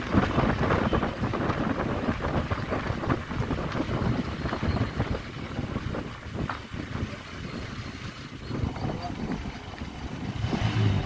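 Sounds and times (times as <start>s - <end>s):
road noise: 0.0s - 11.0s
vehicle engine hum: 0.0s - 11.0s
wind on microphone: 0.0s - 11.0s.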